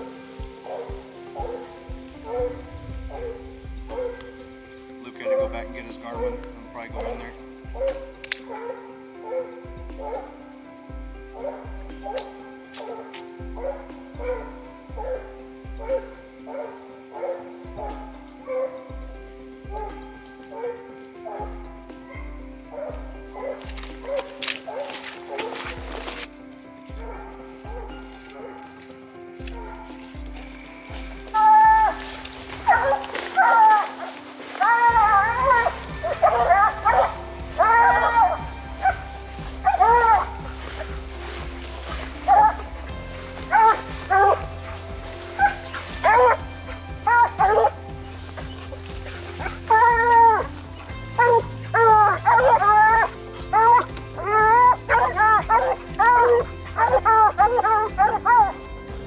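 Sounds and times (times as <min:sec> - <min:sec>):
hounds barking: 0:00.0 - 0:58.7
background music with bass: 0:00.0 - 0:59.0.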